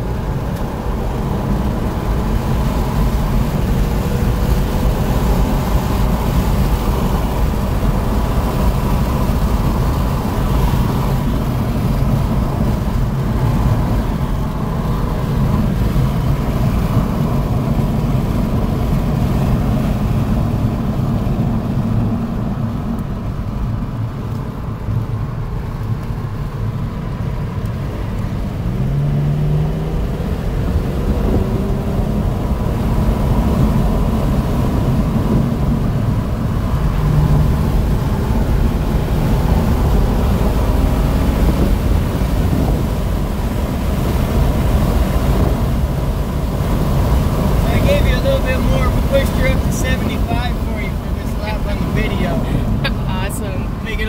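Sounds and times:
car engine: 0.0s - 54.0s
road noise inside car: 0.0s - 54.0s.

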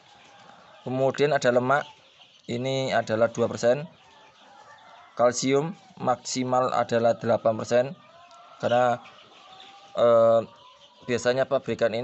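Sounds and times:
faint bird calls: 0.0s - 12.0s
man saying eh: 2.5s - 3.8s, 10.0s - 10.5s.

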